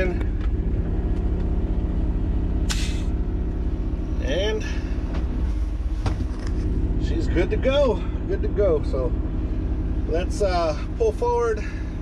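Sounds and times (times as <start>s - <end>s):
diesel truck engine idling: 0.0s - 12.0s
sharp hiss of air: 2.7s - 3.1s.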